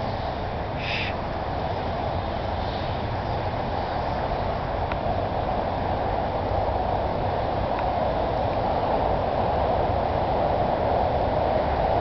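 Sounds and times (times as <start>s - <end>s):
distant freeway traffic roar: 0.0s - 12.0s.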